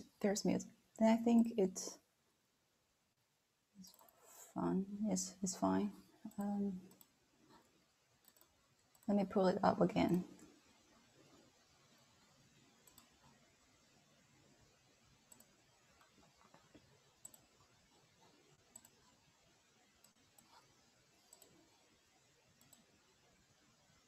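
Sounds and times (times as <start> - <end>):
computer mouse clicks: 3.8 - 4.3, 6.2 - 7.6, 8.2 - 9.2, 12.8 - 13.4, 15.3 - 19.3, 20.0 - 23.0.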